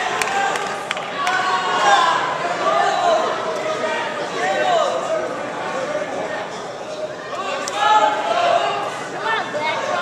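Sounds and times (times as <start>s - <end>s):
crowd shouting and yelling: 0.0s - 10.0s.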